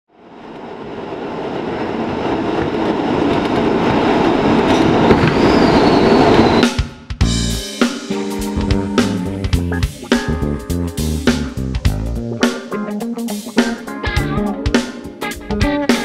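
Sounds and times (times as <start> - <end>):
rushing noise: 0.1 - 16.0
jazz-funk band playing: 7.2 - 16.0.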